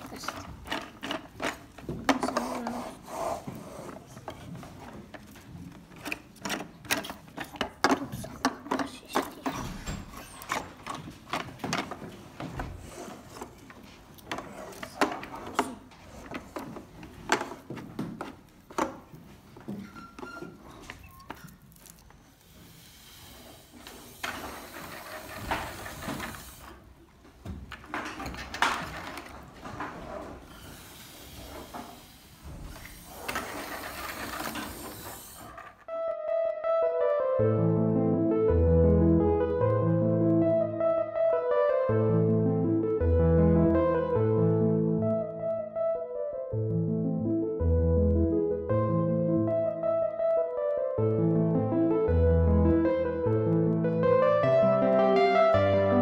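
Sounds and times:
plastic parts clicking and knocking: 0.0s - 2.8s, 3.9s - 22.1s, 27.4s - 30.5s
piano music: 35.8s - 56.0s.

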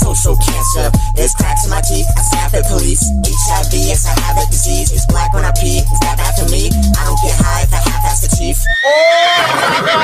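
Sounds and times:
hip-hop beat: 0.0s - 8.8s
horse whinny: 8.7s - 10.0s.

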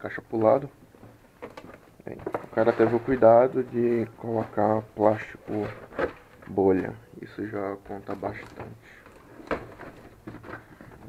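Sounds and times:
bubble wrap rustling: 1.4s - 6.8s.

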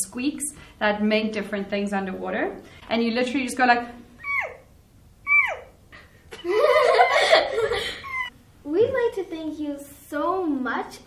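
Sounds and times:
woman making high-pitched squeaks: 4.2s - 5.8s, 8.0s - 8.3s.

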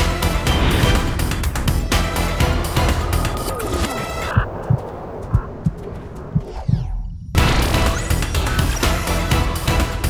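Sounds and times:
deep throbbing heartbeat thuds: 2.8s - 7.6s.

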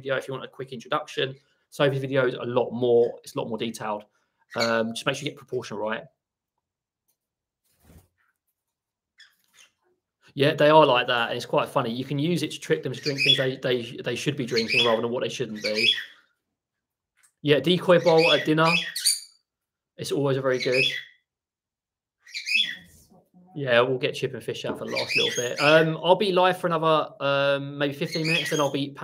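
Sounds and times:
parrot chirping: 4.5s - 4.9s, 9.2s - 10.0s, 12.9s - 13.6s, 14.4s - 16.4s, 17.9s - 19.5s, 20.5s - 21.3s, 22.2s - 23.1s, 24.8s - 26.0s, 28.0s - 28.8s.

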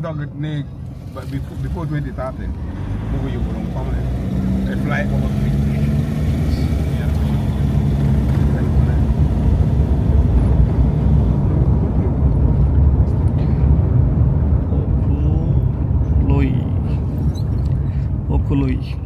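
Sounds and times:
car engine and tyre noise: 0.0s - 19.0s.

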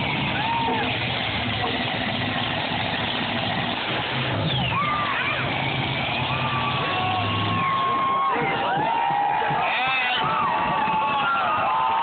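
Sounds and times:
crowd noise: 0.0s - 12.0s
monster truck engines running: 0.0s - 12.0s
high yells: 4.5s - 12.0s.

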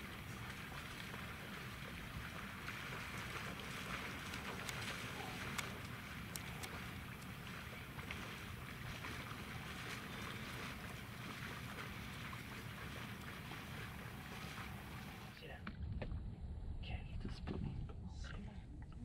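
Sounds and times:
splashing and sloshing water: 0.0s - 15.6s.

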